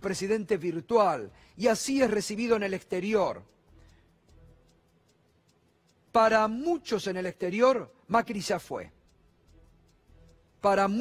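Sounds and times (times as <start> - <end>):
faint even ticking: 0.0 - 11.0.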